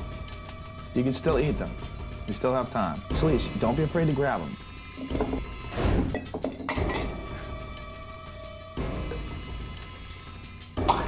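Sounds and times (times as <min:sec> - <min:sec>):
background music with sustained tones: 0:00.0 - 0:11.0
glass clinks: 0:06.1 - 0:07.3.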